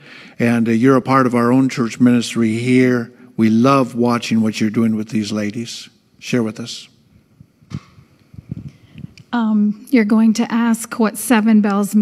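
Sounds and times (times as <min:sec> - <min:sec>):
microphone handling thumps: 0:07.3 - 0:09.2.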